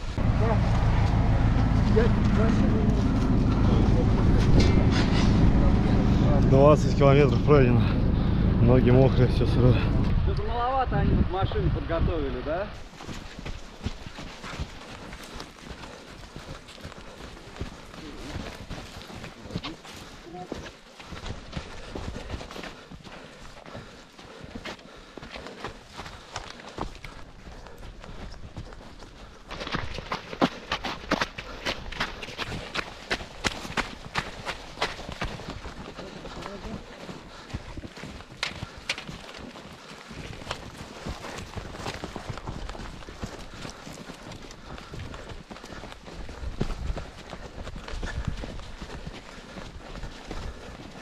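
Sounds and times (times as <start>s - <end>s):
footsteps crunching through snow: 12.5s - 51.0s.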